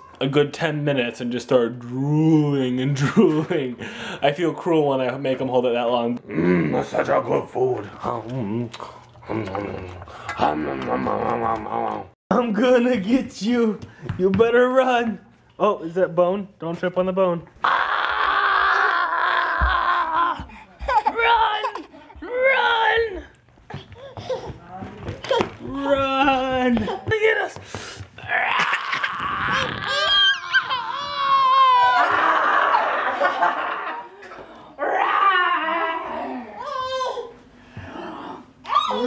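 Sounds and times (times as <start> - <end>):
toddler squealing and crying: 28.6 - 32.2, 38.6 - 39.0.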